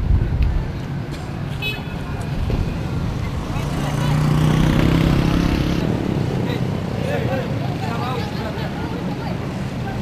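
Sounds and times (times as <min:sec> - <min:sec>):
people talking: 0:03.2 - 0:04.5, 0:06.3 - 0:10.0.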